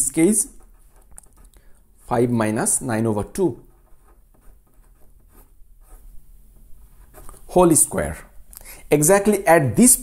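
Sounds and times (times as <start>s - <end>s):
pen scratching on paper: 0.2s - 8.0s.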